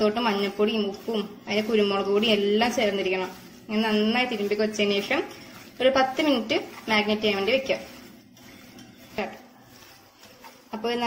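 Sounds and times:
hand squishing marinated chicken: 0:00.0 - 0:11.0.

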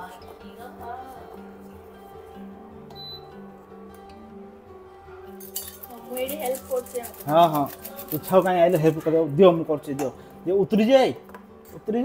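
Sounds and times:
background music with held notes: 0:00.0 - 0:12.0
spoon clinking in steel tumbler: 0:05.4 - 0:09.1.

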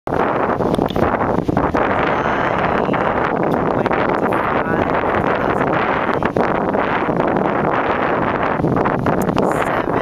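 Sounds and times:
wind on microphone: 0:00.1 - 0:10.0.

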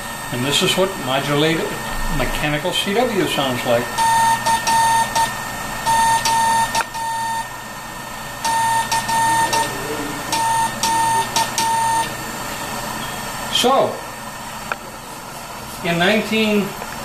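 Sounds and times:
motor hum: 0:00.0 - 0:15.7
buzzy morse code tone: 0:04.0 - 0:07.5, 0:08.4 - 0:12.2.

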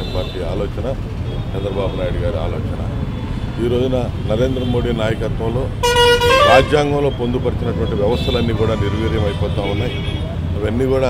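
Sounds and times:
road traffic rumble: 0:00.0 - 0:11.0
vehicle horn: 0:05.8 - 0:06.9
man speaking: 0:06.3 - 0:10.0.

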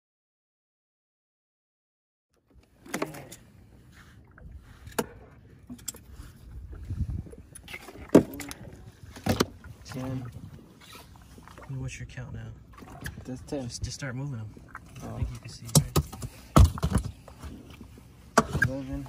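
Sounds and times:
fish thudding into cooler: 0:15.8 - 0:17.1.

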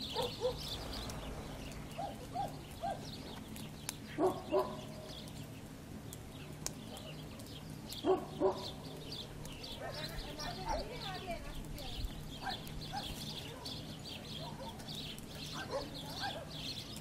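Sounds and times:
small birds chirping: 0:00.0 - 0:17.0
dog barking: 0:00.1 - 0:00.7, 0:02.0 - 0:03.1, 0:04.2 - 0:04.9, 0:08.0 - 0:08.8, 0:09.8 - 0:10.2, 0:12.4 - 0:13.8, 0:14.4 - 0:14.8, 0:15.5 - 0:16.6.

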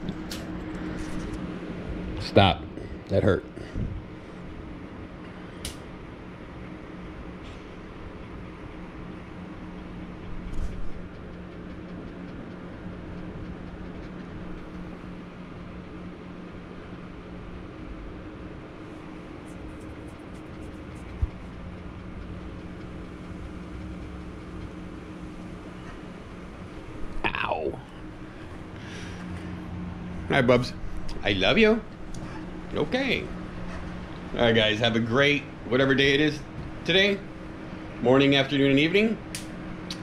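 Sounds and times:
low mechanical hum: 0:00.0 - 0:40.0.

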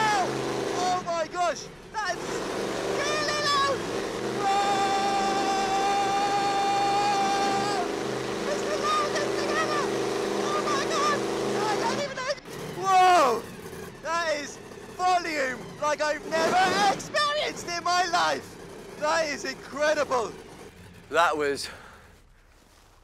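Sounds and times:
passenger yelling: 0:00.0 - 0:21.8
loud truck engine running: 0:00.0 - 0:22.4
long high cry: 0:02.9 - 0:14.2
loud whoops: 0:03.1 - 0:08.0.

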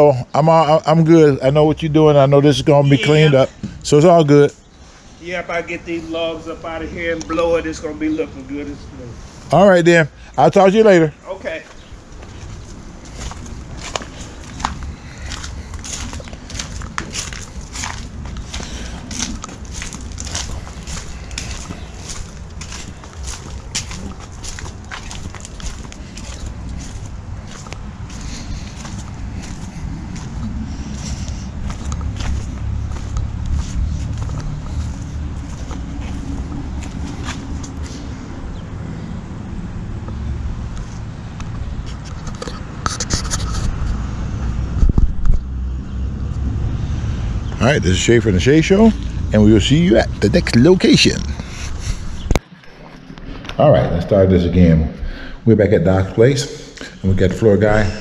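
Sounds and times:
footsteps scuffing on concrete: 0:11.6 - 0:38.0
low rumble on microphone: 0:42.5 - 0:47.6.

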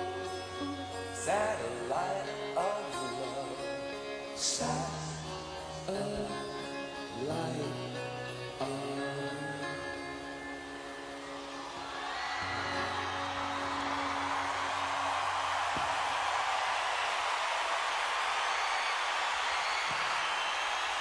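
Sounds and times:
rock band playing: 0:00.0 - 0:15.8
crowd cheering and whooping: 0:11.0 - 0:21.0.

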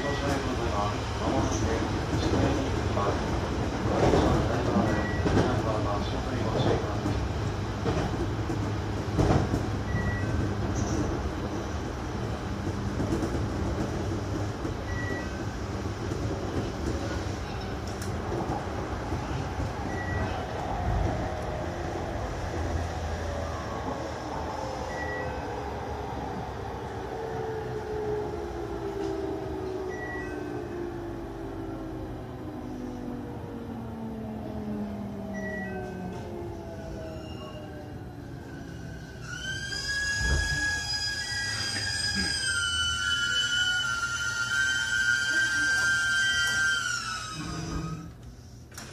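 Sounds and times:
train wheels rumbling on rails: 0:00.0 - 0:48.9
rail-joint clicks: 0:12.7 - 0:20.7.

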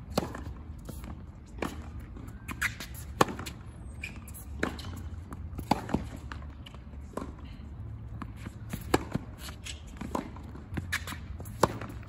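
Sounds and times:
racket hitting ball: 0:00.1 - 0:07.4, 0:08.6 - 0:12.0.

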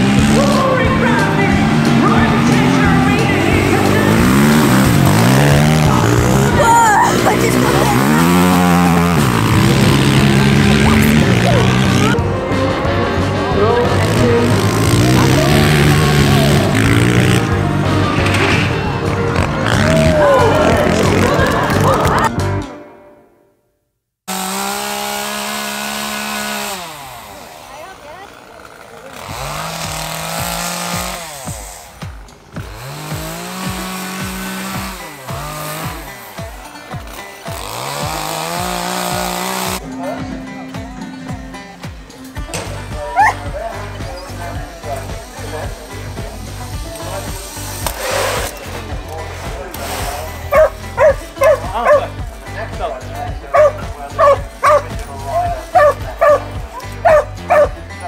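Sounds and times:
chainsaw carving wood: 0:00.0 - 0:12.2, 0:13.8 - 0:22.3, 0:24.3 - 0:39.9, 0:42.4 - 0:58.0
quad bike engines revving: 0:00.0 - 0:22.5, 0:24.3 - 0:58.0.

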